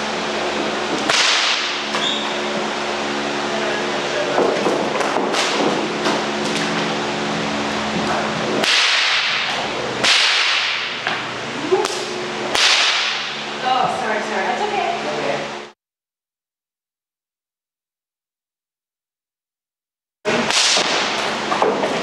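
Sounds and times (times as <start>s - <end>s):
steady low hum: 0.0s - 15.8s
whip cracking: 1.0s - 2.3s, 5.0s - 6.8s, 8.6s - 13.4s, 20.3s - 21.4s.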